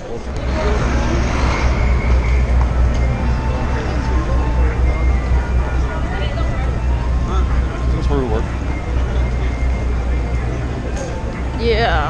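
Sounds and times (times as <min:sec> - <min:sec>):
city ambience rumble: 0:00.0 - 0:12.0.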